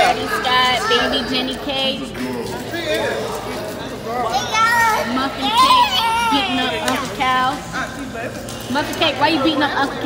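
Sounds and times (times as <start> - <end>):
young children playing: 0.0 - 2.3, 4.1 - 8.2.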